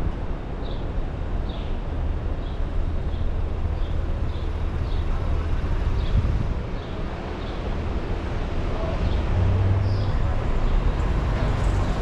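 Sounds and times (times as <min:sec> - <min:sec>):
low rumble of cars: 0:00.0 - 0:12.0.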